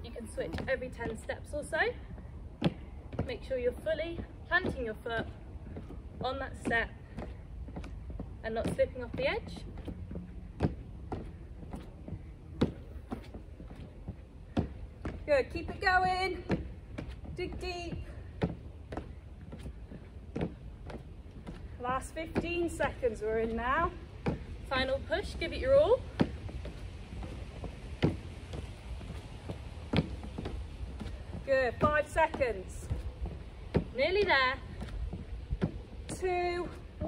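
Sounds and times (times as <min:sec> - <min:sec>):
feet landing on plastic steps: 0:00.2 - 0:37.0.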